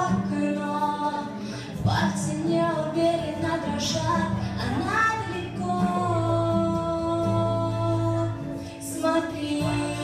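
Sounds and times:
woman singing pop song through loudspeakers: 0.0s - 10.0s.

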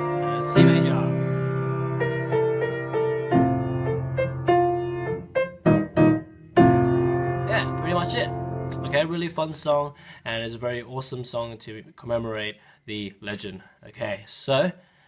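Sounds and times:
keyboard piano chords: 0.0s - 9.3s.

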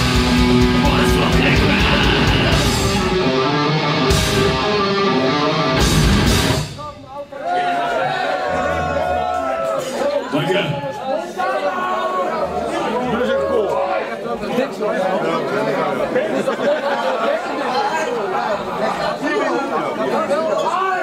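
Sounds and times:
crowd chatter in a large hall: 0.0s - 21.0s.

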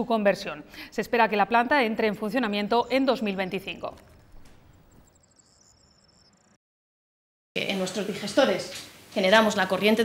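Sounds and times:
faint outdoor ambience: 0.0s - 6.6s
high-pitched chirping: 2.6s - 6.6s.

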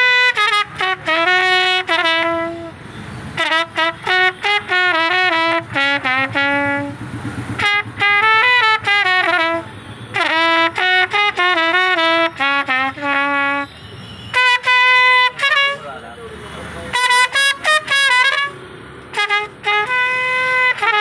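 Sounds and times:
solo trumpet melody: 0.0s - 2.8s, 3.4s - 7.0s, 7.6s - 15.8s, 16.9s - 21.0s.

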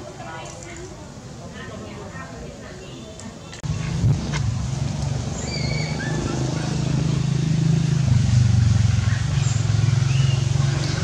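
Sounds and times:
engine droning: 3.6s - 11.0s
bird chirps: 5.4s - 6.3s, 9.0s - 10.6s.

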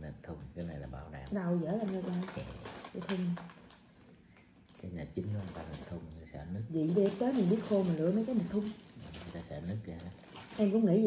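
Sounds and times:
man's voice: 0.0s - 1.3s
faint clicks and rustles: 1.2s - 11.0s.

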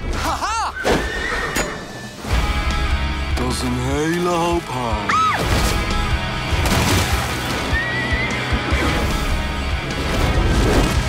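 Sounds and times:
horse whinnying: 0.7s - 2.2s
trailer music: 1.6s - 11.0s.

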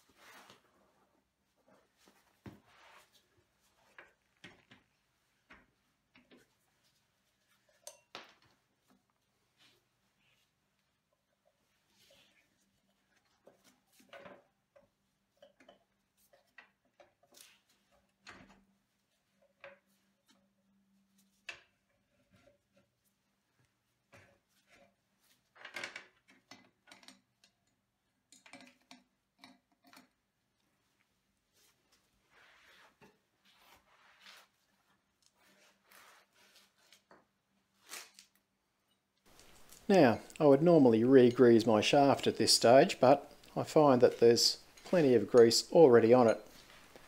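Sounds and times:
tools clicking and knocking: 25.6s - 30.2s.

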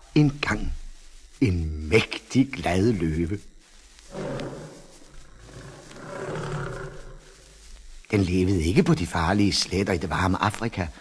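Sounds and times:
lion roaring: 4.1s - 7.4s.

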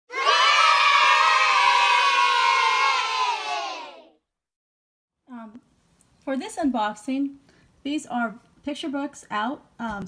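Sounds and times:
children cheering and shouting: 0.1s - 4.2s.

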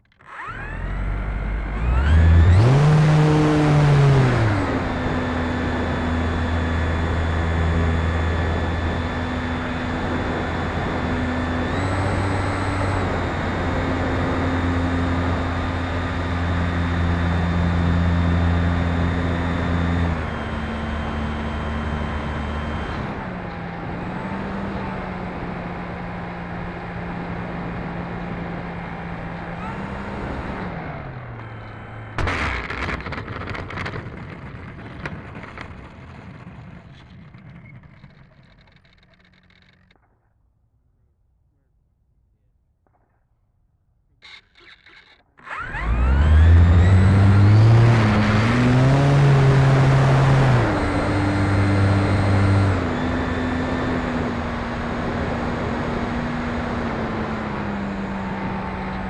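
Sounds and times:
electric motor and propeller: 0.0s - 34.1s, 34.9s - 40.1s, 44.2s - 59.0s.

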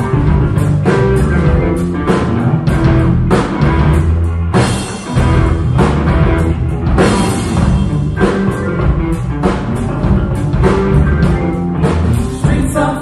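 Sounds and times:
bass guitar: 0.0s - 13.0s
drum kit: 0.0s - 13.0s
electric guitars: 0.0s - 13.0s.

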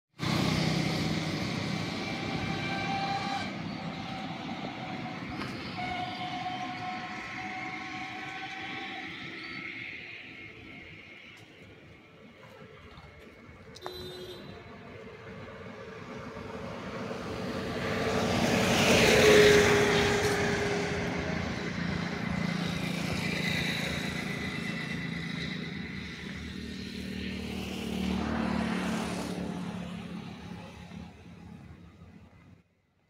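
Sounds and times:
quieter vehicle passing: 14.6s - 32.6s
vehicle passing by: 15.2s - 31.7s.

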